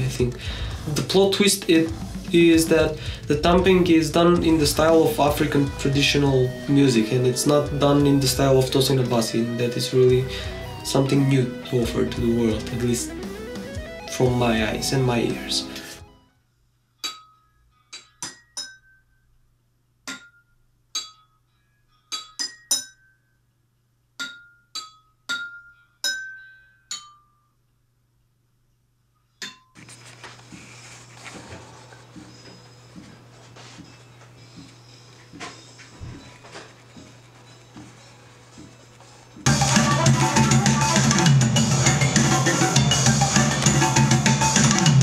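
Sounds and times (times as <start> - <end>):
music: 0.0 - 16.5, 29.6 - 45.0.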